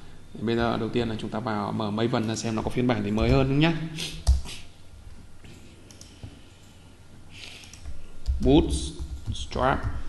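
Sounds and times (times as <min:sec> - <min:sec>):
low room noise: 0:00.0 - 0:10.0
computer mouse clicks: 0:05.8 - 0:06.8, 0:07.5 - 0:08.4.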